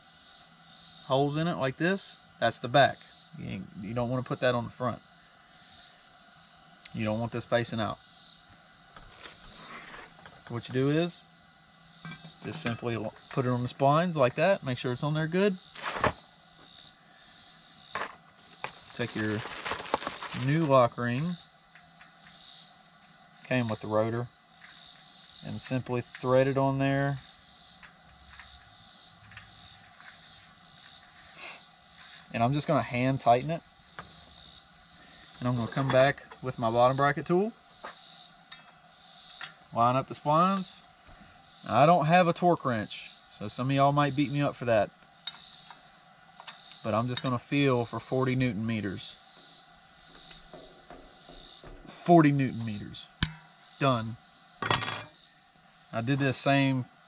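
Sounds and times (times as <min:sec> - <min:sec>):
insects droning: 0:00.0 - 0:57.0
plastic bag rustle: 0:15.8 - 0:16.2, 0:18.6 - 0:20.7.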